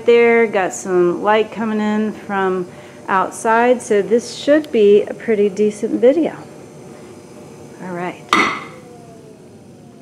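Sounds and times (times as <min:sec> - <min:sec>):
pottery wheel whine: 0:00.0 - 0:10.0
sharp metal clank: 0:08.3 - 0:08.8.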